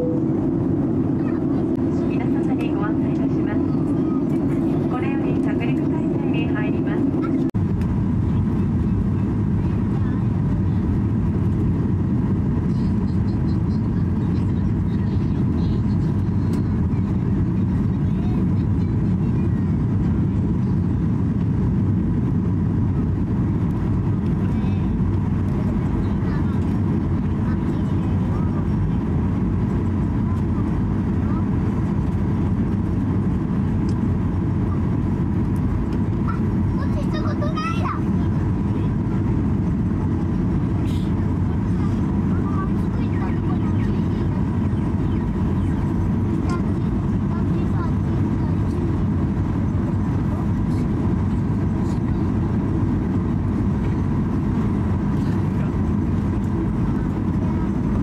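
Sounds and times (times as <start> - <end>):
airliner cabin engine rush: 0.0 - 58.0.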